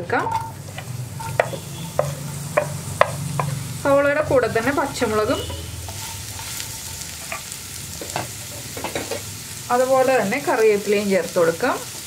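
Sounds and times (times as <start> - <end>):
onions sizzling in hot oil: 0.0 - 12.0
wooden spatula tapping: 1.3 - 3.6.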